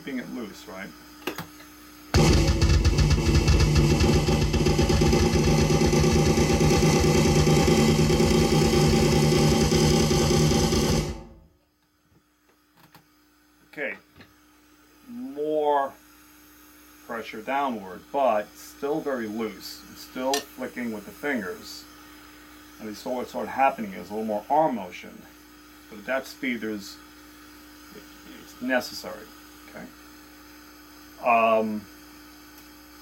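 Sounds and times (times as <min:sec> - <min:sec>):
fast snare drum roll: 0:02.2 - 0:11.4.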